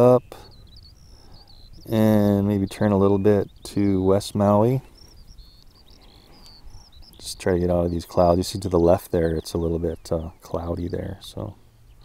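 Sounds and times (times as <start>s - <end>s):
high-pitched chirps: 0.0s - 8.3s.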